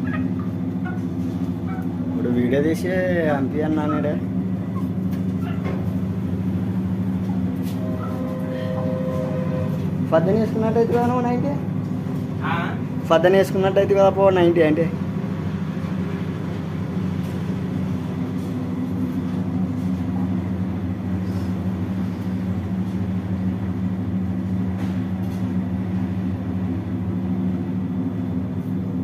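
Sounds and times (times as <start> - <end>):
low mechanical hum: 0.0 - 29.0.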